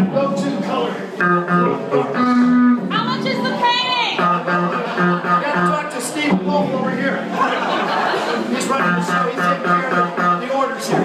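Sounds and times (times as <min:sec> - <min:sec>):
guitar music: 0:00.0 - 0:11.0
man's wordless vocal: 0:08.8 - 0:11.0.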